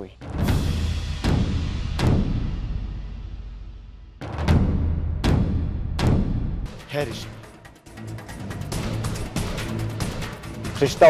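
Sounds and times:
dramatic background music: 0.0 - 11.0.

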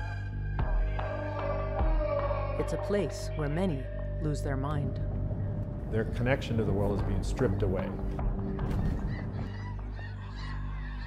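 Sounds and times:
birds honking overhead: 7.9 - 11.0.

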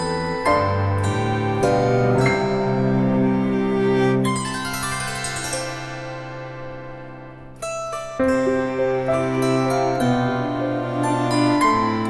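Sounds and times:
plucked-string instrumental music: 0.0 - 12.0.

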